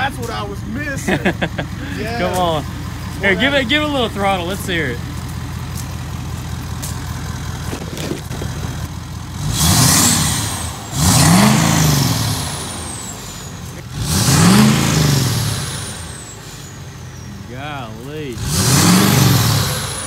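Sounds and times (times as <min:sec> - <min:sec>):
diesel engine idling and revving: 0:00.0 - 0:20.0.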